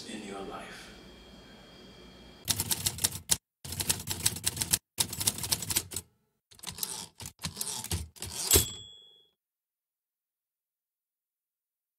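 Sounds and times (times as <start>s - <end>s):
typewriter keys clacking: 2.5s - 8.8s.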